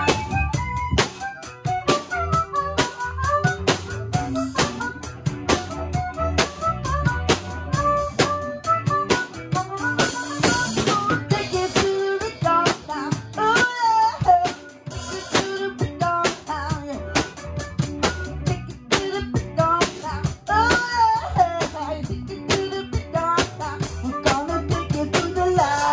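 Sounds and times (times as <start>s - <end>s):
bass guitar: 0.0s - 25.9s
drum kit: 0.0s - 25.9s
electric guitar lead melody: 0.0s - 25.9s.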